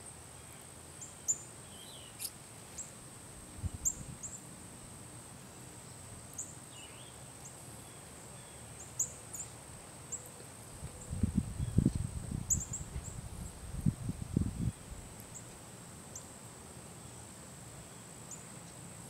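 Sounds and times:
high-pitched insect-like whine: 3.6 - 4.4.

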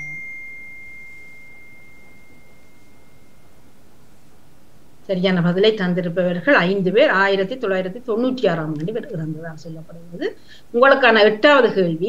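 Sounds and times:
bell-like chime: 0.0 - 3.6.

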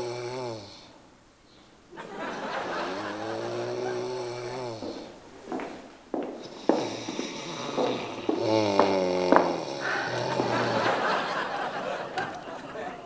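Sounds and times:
man snoring: 0.0 - 1.0, 2.7 - 5.3, 6.3 - 11.1.

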